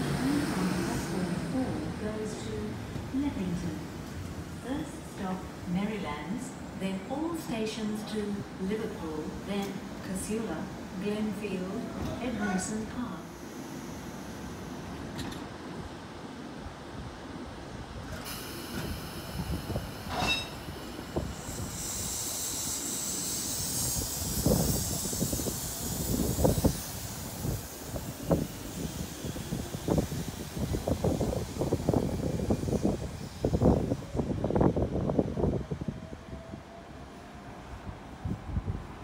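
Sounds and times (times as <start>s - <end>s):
train high hiss: 11.6s - 16.3s, 18.0s - 35.3s.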